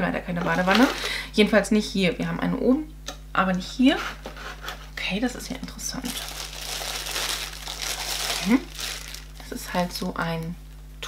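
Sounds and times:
plastic wrapping crinkling: 5.9 - 10.0.

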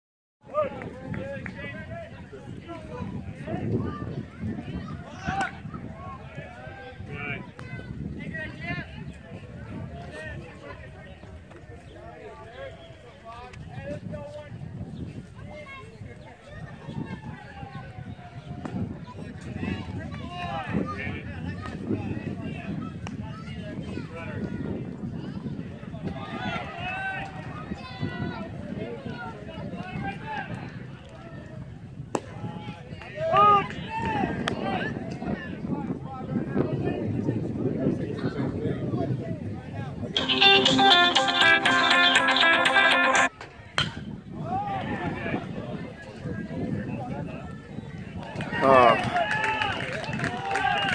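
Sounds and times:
outdoor background noise: 0.4 - 50.9
people chattering and calling out: 0.4 - 50.9
people talking: 32.4 - 50.9.

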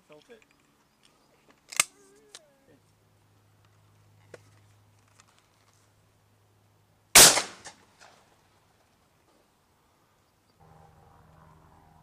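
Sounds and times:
shotgun shot: 7.2 - 7.8.

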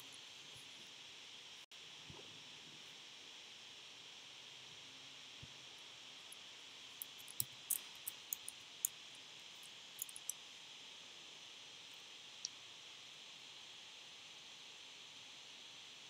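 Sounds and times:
keyboard keystrokes typing: 10.0 - 10.3.

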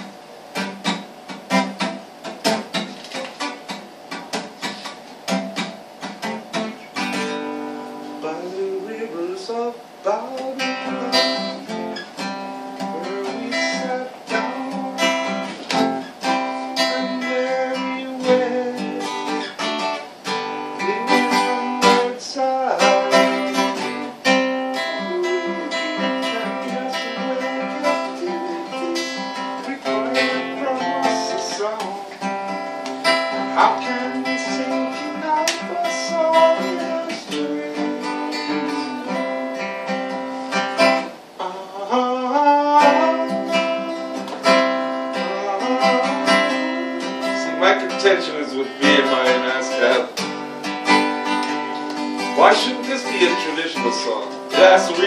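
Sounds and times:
acoustic guitar strumming: 0.0 - 55.0
man singing: 8.2 - 12.0, 12.7 - 16.1, 16.7 - 19.7, 20.7 - 32.3, 33.3 - 39.7, 41.4 - 50.2, 52.2 - 55.0.

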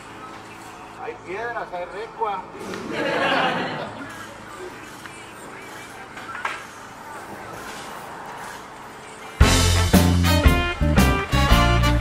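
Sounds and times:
faint voices: 0.0 - 9.4.

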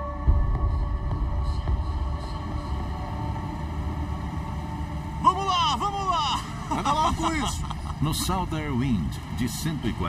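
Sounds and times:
faint steady hum: 0.0 - 10.0
man talking: 5.2 - 10.0.

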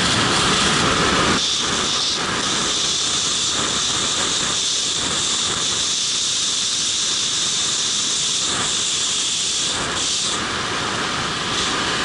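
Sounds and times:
wind buffeting microphone: 0.0 - 10.1.

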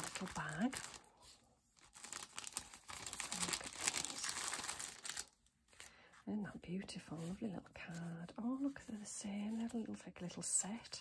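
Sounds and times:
plastic bag crinkling: 0.0 - 5.9.

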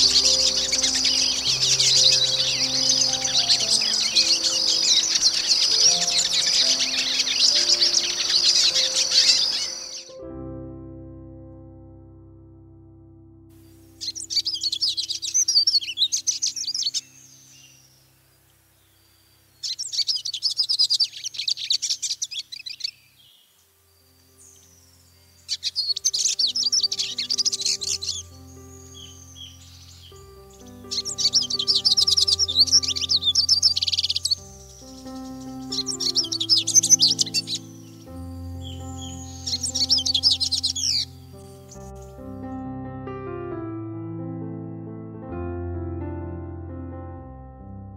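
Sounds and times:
birds twittering song: 0.0 - 10.2, 13.6 - 42.6
soft piano music: 0.0 - 47.9.

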